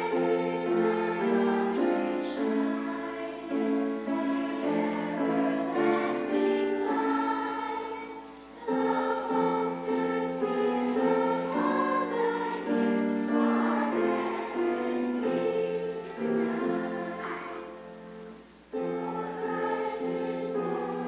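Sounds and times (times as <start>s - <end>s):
children's choir singing: 0.0s - 21.0s.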